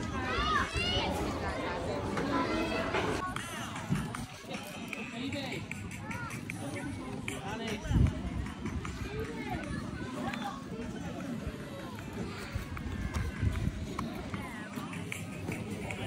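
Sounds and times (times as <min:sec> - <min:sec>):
people talking indistinctly: 0:00.0 - 0:16.0.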